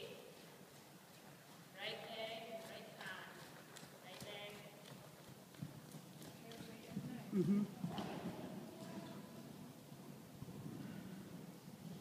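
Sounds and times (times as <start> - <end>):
horse hoofbeats on soft footing: 0.4 - 12.0.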